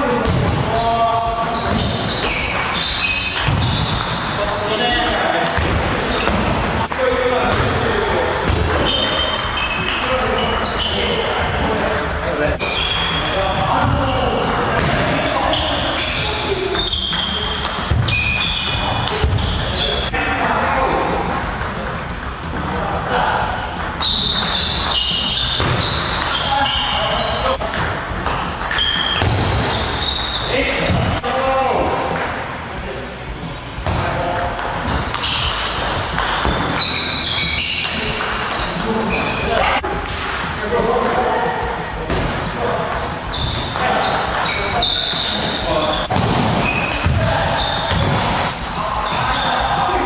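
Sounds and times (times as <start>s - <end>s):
sneakers squeaking on floor: 0.0s - 31.2s, 33.5s - 50.0s.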